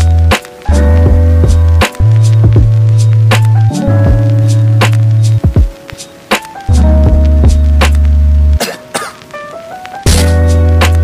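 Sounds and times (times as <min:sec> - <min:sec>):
short notes stepping upward: 0:00.0 - 0:08.6
sharp percussive hits: 0:10.1 - 0:11.0.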